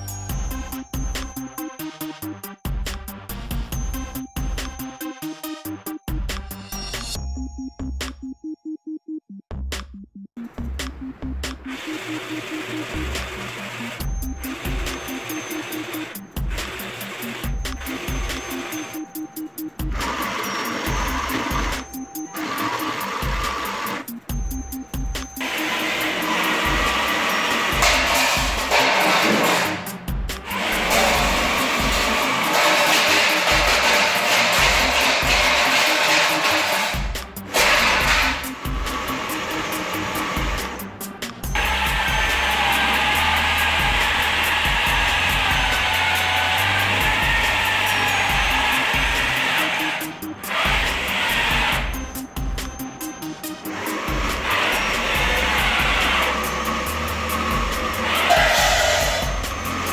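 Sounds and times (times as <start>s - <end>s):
background music with steady beat: 0.0s - 59.9s
electric motors whirring: 11.5s - 59.9s.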